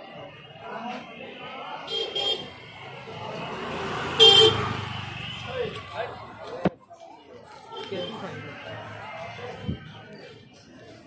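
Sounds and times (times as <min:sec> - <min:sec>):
car horn toots: 0:04.1 - 0:04.8.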